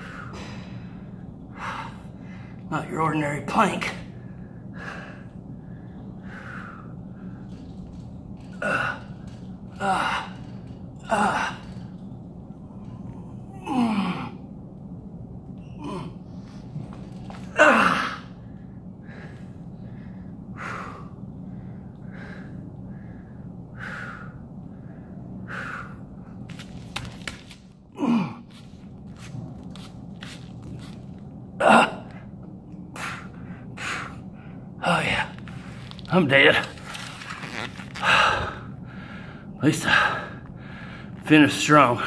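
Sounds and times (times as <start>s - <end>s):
man breathing heavily: 0.0s - 2.7s, 4.0s - 14.4s, 15.7s - 26.7s, 27.9s - 36.0s, 37.5s - 41.2s
low hum: 0.0s - 41.2s
man groaning: 13.5s - 14.4s, 17.5s - 18.2s.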